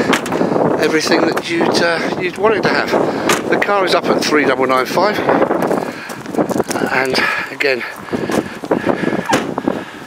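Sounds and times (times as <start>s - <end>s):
footsteps crunching on gravel: 4.5s - 9.2s.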